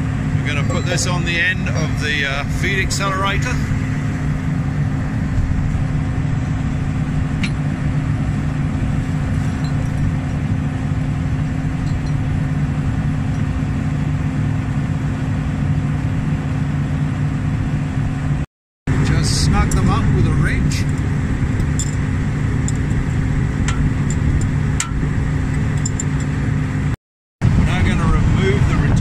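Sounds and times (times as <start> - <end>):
engine idling: 0.0 - 29.0.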